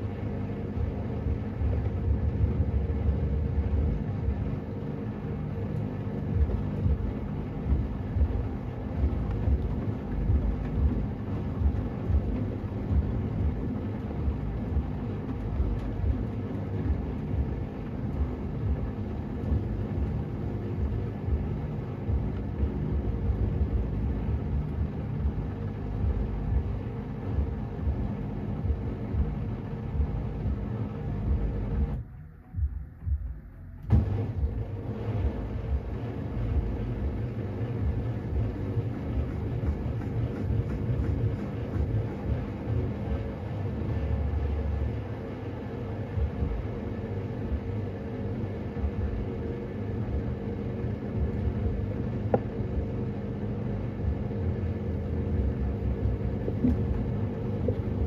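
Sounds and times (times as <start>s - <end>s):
washing machine drum rumbling: 0.0s - 32.0s, 32.6s - 45.0s, 55.0s - 58.0s.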